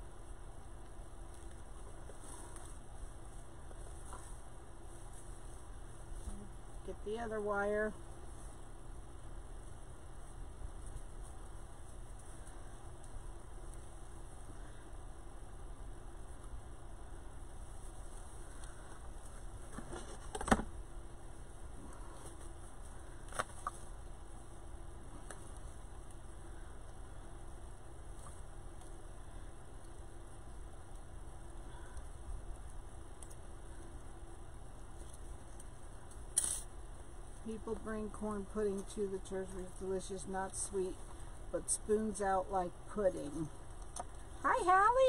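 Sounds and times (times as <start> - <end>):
steady low hum: 0.0 - 45.0
handling noise of craft supplies: 18.5 - 20.7.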